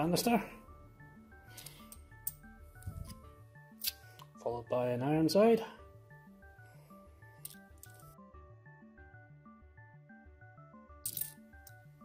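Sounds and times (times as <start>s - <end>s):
background music with steady beat: 0.0s - 12.0s
coins clinking: 1.5s - 2.5s, 7.4s - 8.1s, 11.0s - 11.8s.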